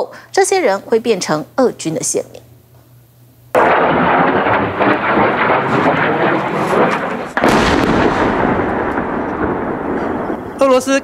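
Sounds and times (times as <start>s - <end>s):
continuous rough noise: 0.0s - 11.0s
missile explosion blast: 3.6s - 11.0s.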